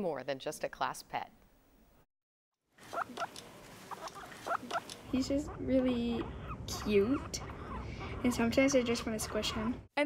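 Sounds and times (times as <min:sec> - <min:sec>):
guinea pig squeaking: 0:02.8 - 0:09.9.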